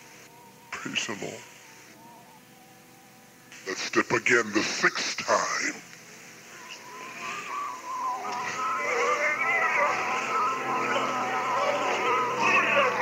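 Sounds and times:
congregation praying aloud: 8.2 - 13.0.

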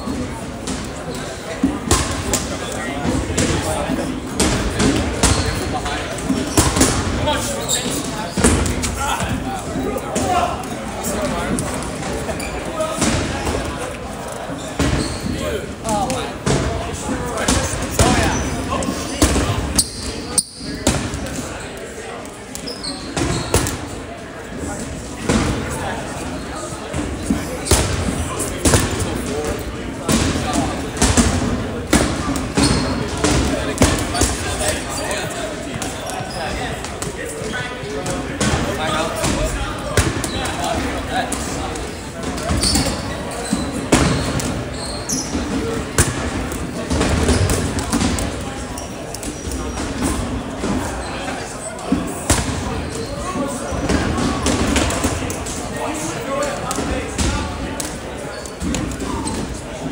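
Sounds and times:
balls bouncing on gym floor: 0.0 - 21.5, 22.5 - 24.0, 26.9 - 51.0, 51.8 - 53.0
indistinct chatter of players: 0.0 - 59.9.

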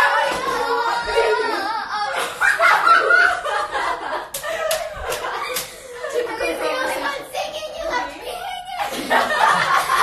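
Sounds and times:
girls laughing: 0.0 - 7.2, 8.2 - 10.0
girls talking: 0.0 - 10.0
sharp hand slaps: 4.3 - 5.8.

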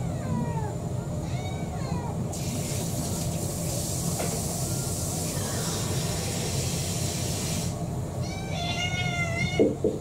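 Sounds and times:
cat meowing: 0.1 - 2.3, 8.2 - 9.8
steady hiss: 2.3 - 7.8.

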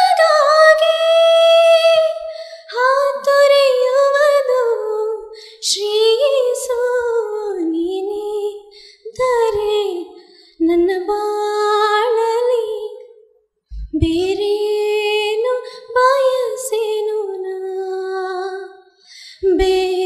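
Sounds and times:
woman singing: 0.0 - 13.1, 13.8 - 20.0
thump on microphone: 13.7 - 14.3.

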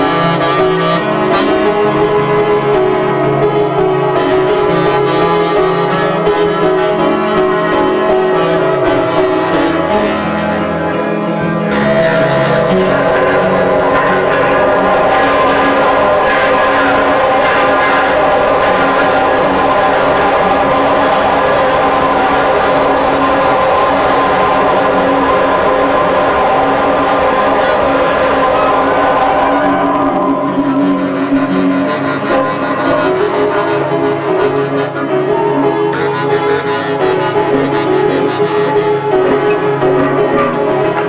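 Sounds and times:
upright piano playing: 0.0 - 41.0.

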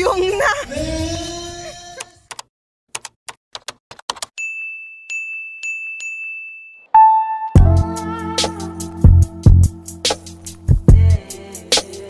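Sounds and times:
quick typing-like clicks: 2.3 - 4.4
steady high tone: 7.0 - 11.2
music beat with drum hits: 7.0 - 12.0.

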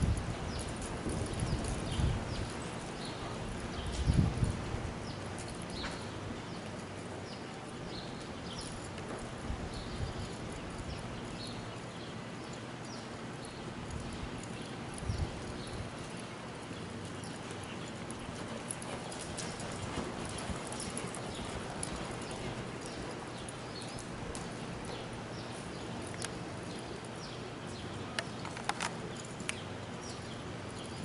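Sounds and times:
horse hoofbeats on soft dirt: 0.0 - 31.0.

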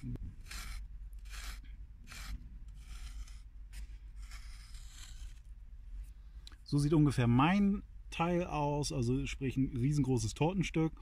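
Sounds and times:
stick scraping sandy soil: 0.0 - 5.5.

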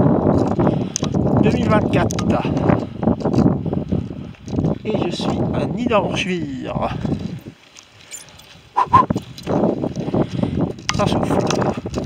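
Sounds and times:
cyclist breathing hard: 0.5 - 1.3, 2.5 - 4.6, 7.0 - 10.9.

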